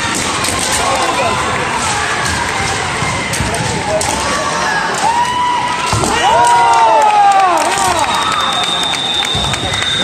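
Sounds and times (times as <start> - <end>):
crowd noise: 0.0 - 10.0
scattered clapping: 5.0 - 10.0.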